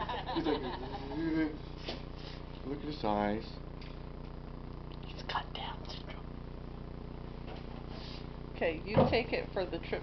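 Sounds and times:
steady low hum: 0.0s - 10.0s
faint whispering: 5.0s - 6.3s.

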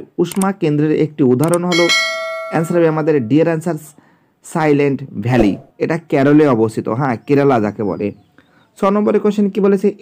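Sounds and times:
notification bell chime: 1.8s - 3.3s.

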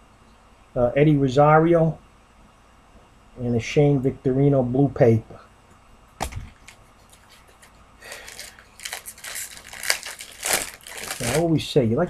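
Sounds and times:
plastic wrapper crinkling: 6.2s - 11.6s.

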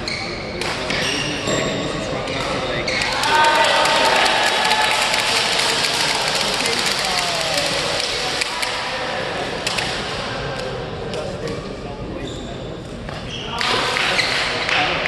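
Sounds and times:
shoes squeaking on court: 0.0s - 3.2s, 12.2s - 14.5s
players' voices: 0.0s - 15.0s.

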